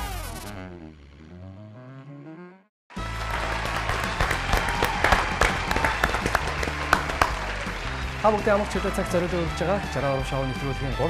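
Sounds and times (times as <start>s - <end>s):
hand clapping and applause: 2.9s - 10.8s
music with steady bass line: 3.0s - 11.0s.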